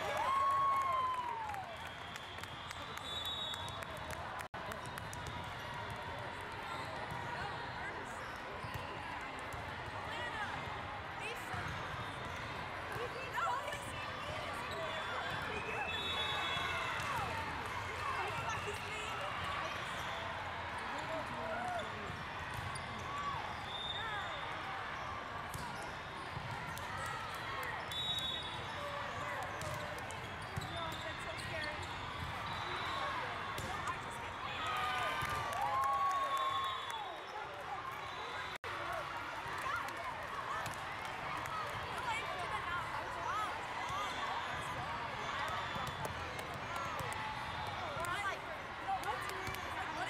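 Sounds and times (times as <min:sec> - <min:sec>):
chatter of many voices: 0:37.3 - 0:50.0.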